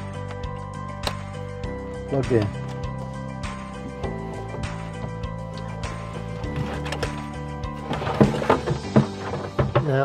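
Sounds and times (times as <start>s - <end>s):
background music with held chords: 0.0s - 10.0s
short knocks: 7.9s - 10.0s.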